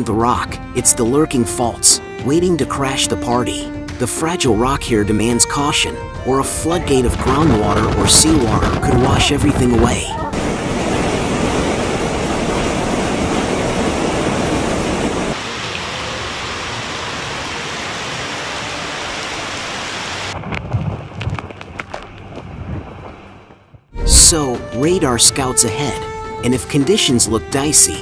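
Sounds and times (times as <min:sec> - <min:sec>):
sharp knocks and crackles: 0:20.4 - 0:23.8.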